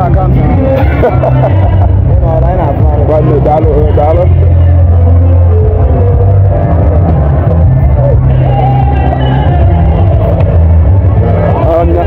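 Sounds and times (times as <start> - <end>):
men talking: 0.0 - 4.9, 11.2 - 12.0
music with heavy bass: 0.0 - 12.0.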